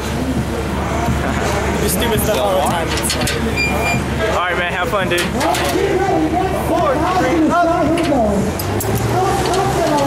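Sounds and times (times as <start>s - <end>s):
people talking: 0.0s - 10.0s
steady low rumble: 0.0s - 10.0s.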